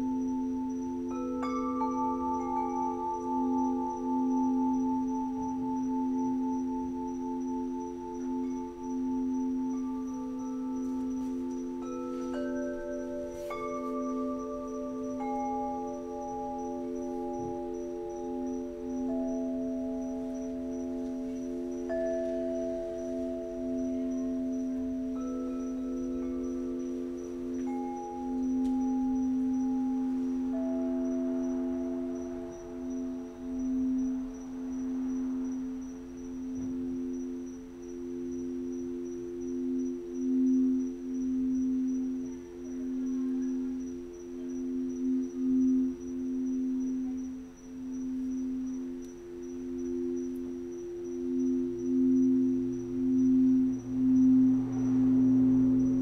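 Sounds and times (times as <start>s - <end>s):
singing bowls ringing: 0.0s - 56.0s.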